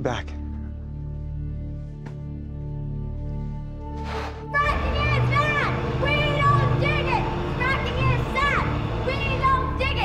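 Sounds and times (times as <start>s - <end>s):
background music: 0.0s - 10.0s
young voices chanting: 4.6s - 10.0s.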